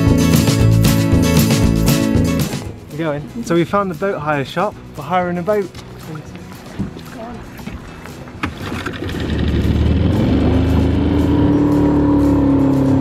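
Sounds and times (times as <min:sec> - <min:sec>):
small outboard motor running: 0:06.5 - 0:13.0.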